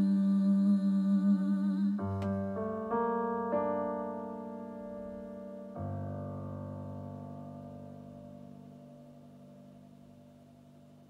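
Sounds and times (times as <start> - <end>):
piano chord held: 1.9 - 11.0.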